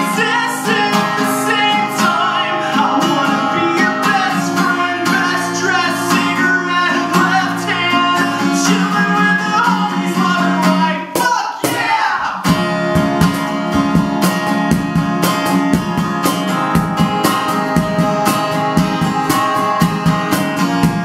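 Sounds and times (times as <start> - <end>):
man singing: 0.0 - 12.6
acoustic guitar strumming: 0.0 - 21.0
cajon beat: 0.0 - 21.0.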